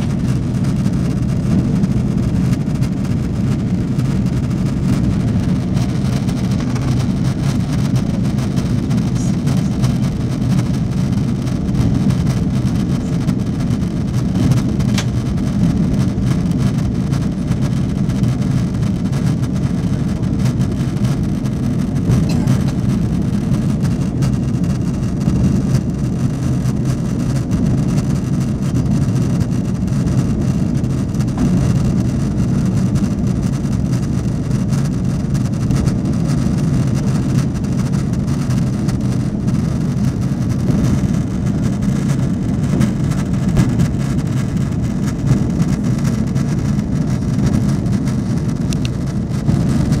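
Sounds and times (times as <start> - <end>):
airliner cabin drone: 0.0 - 50.0.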